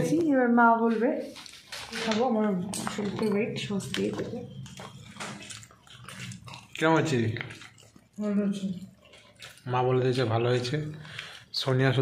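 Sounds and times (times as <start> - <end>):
person chewing food: 1.4 - 11.6.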